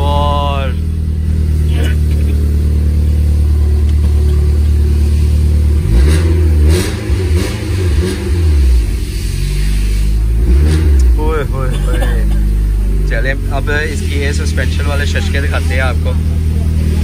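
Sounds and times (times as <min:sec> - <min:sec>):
car engine idling and revving: 0:00.0 - 0:17.0.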